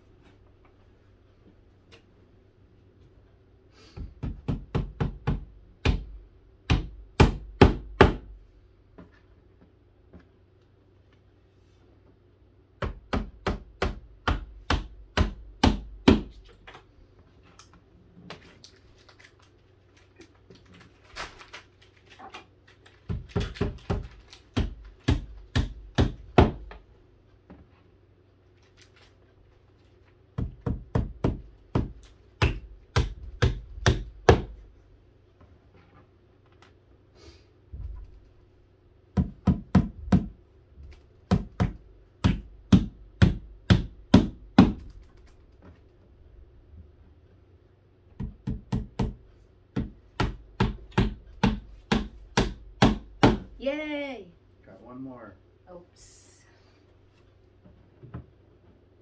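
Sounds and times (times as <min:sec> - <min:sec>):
hammer pounding nails into wood: 0:04.0 - 0:08.3, 0:12.8 - 0:16.5, 0:23.0 - 0:26.8, 0:30.4 - 0:34.6, 0:39.2 - 0:40.4, 0:41.3 - 0:45.0, 0:48.2 - 0:53.5.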